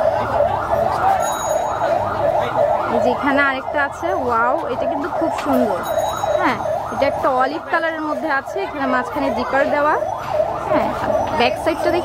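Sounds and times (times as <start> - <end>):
siren sweeping up and down: 0.0 - 12.0.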